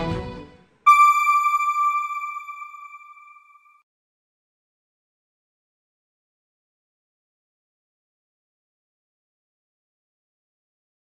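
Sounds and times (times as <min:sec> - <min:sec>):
electronic bell chime: 0:00.9 - 0:03.7.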